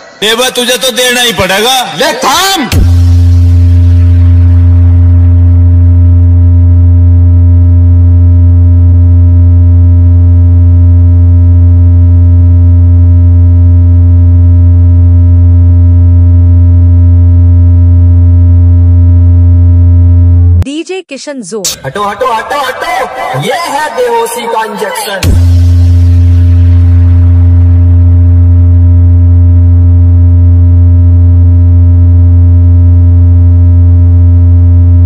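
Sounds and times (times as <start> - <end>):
deep synthesized bass tone: 2.7 - 20.6, 25.2 - 35.0.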